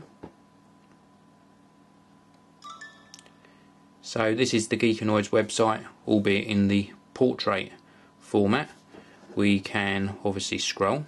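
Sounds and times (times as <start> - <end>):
faint steady hum: 0.0 - 11.0
two-note chime: 2.6 - 3.6.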